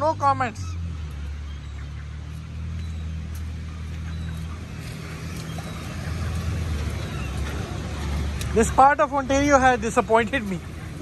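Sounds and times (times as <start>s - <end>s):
traffic engine hum: 0.0s - 11.0s.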